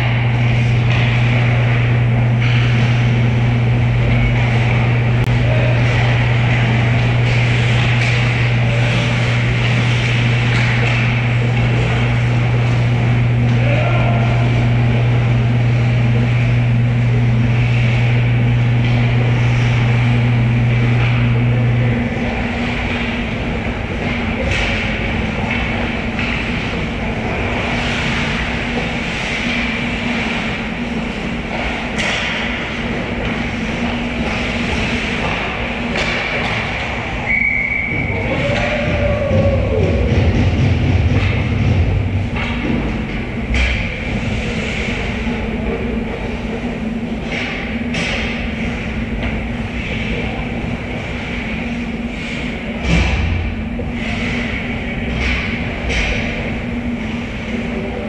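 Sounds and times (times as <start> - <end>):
low mechanical hum: 0.0 - 58.0.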